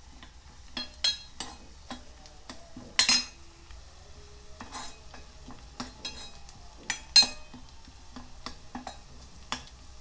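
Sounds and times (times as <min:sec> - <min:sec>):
faint sizzle: 0:00.0 - 0:10.0
spoon scraping and knocking pot: 0:00.7 - 0:03.4, 0:04.6 - 0:09.7.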